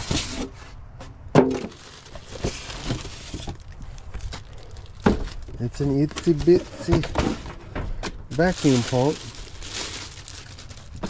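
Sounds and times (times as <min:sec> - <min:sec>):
crinkly plastic bag rustling: 0:01.6 - 0:07.5, 0:08.3 - 0:11.0.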